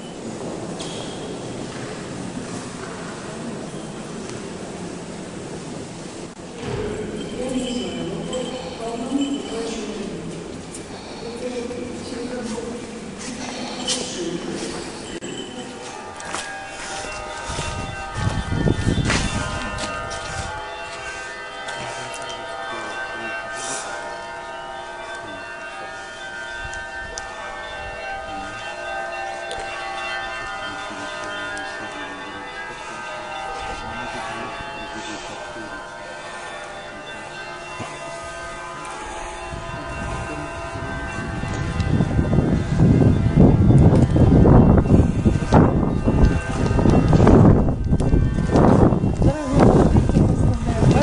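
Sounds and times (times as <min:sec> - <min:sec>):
church bells ringing: 0:00.0 - 0:51.0.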